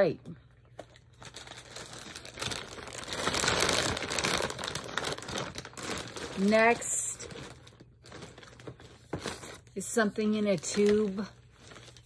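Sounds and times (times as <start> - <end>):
plastic bags crinkling: 0.6 - 12.0.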